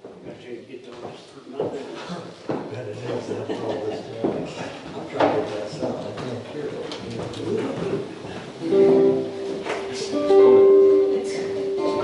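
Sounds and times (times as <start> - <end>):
low talk among musicians: 0.0 - 12.0
band playing: 8.6 - 12.0
stringed instrument ringing note: 10.2 - 12.0.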